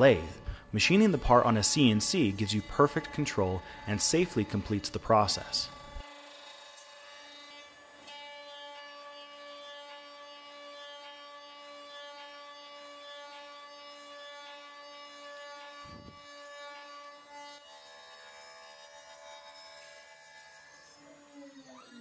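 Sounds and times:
router spindle whine: 1.0s - 6.5s, 15.5s - 16.6s.

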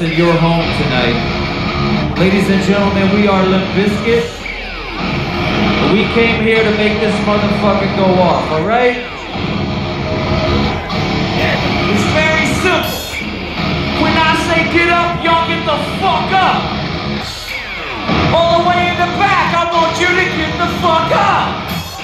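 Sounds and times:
electric guitar bending notes: 0.0s - 22.0s
heavy rock band playing live: 0.0s - 22.0s.

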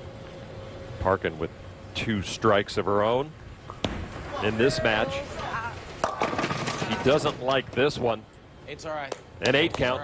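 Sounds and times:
bowling ball hitting pins: 6.0s - 7.3s.

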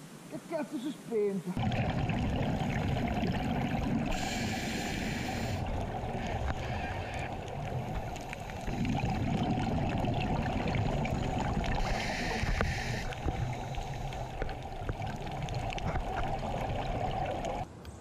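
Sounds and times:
burst of higher hiss: 11.8s - 14.2s.

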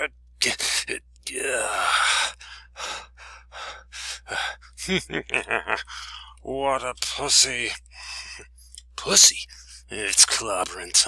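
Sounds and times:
man gasping: 1.8s - 4.7s, 5.8s - 6.4s.

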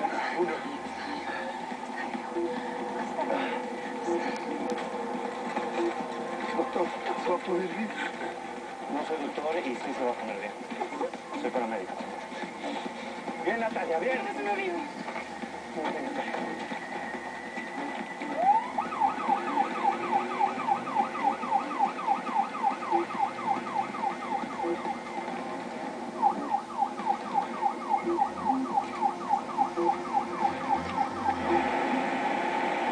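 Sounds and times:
ambulance siren yelp: 16.6s - 32.9s.

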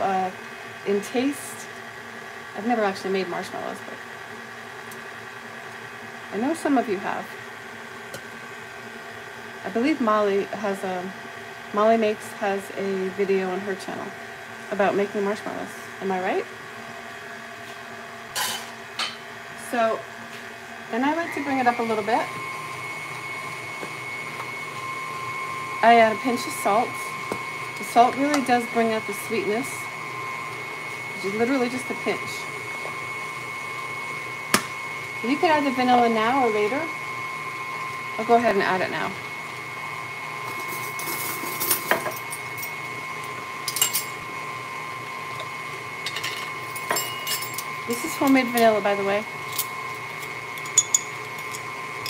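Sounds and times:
stand mixer motor whining: 0.0s - 52.0s
utensils clinking: 43.7s - 44.2s, 46.0s - 48.8s, 49.4s - 51.7s.

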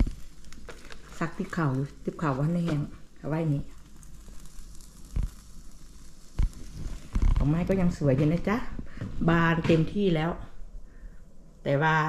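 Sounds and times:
chicken sizzling: 0.0s - 9.1s
fire crackling: 0.0s - 12.0s.

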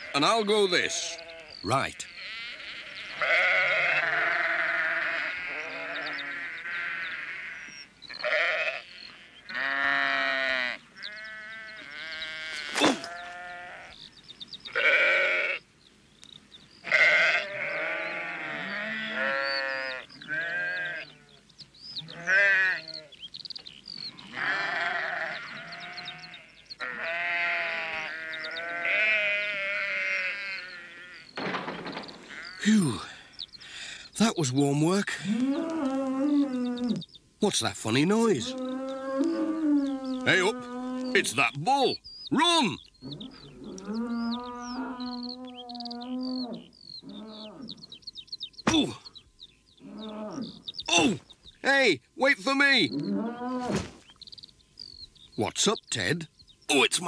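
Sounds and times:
sheep bleating: 0.0s - 14.0s, 14.7s - 15.6s, 16.8s - 21.4s, 22.0s - 23.1s, 24.1s - 31.3s, 38.4s - 47.7s.

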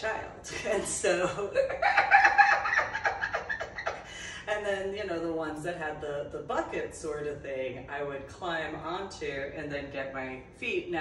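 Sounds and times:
woman giggling: 0.5s - 4.4s.

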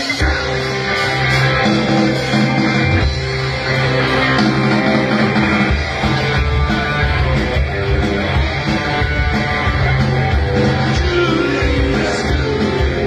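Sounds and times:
bass guitar: 0.0s - 13.0s
drums: 0.0s - 13.0s
electric guitars: 0.0s - 13.0s.

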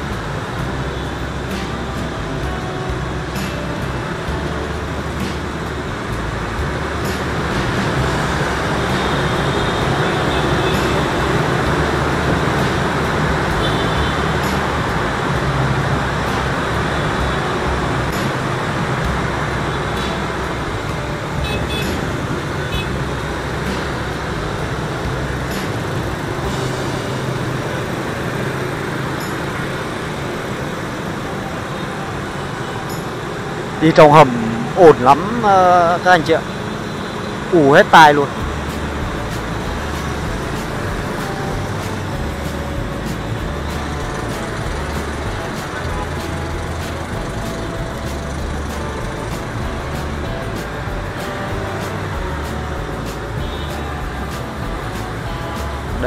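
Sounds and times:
road noise: 0.0s - 56.0s
scooter and motorbike traffic: 0.0s - 56.0s.

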